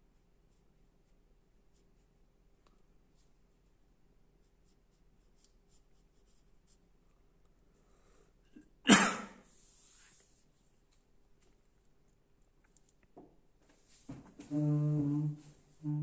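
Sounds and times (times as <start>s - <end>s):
pencil scratching on paper: 4.4s - 6.9s.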